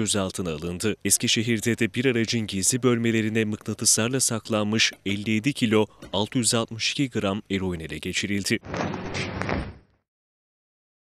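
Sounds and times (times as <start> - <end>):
burst of noise: 8.6 - 10.0.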